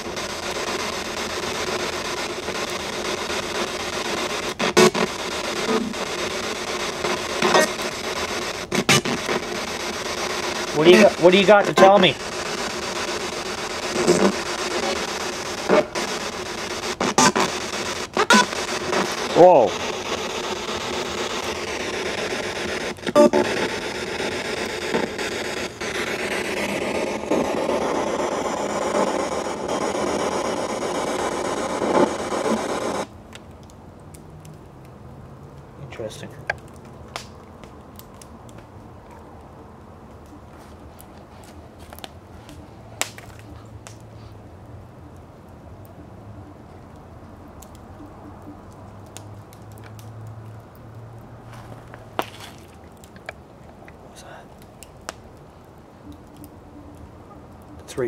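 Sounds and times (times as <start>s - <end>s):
radio static hissing: 0.0s - 33.1s
faint clicks and rustles: 47.7s - 57.9s.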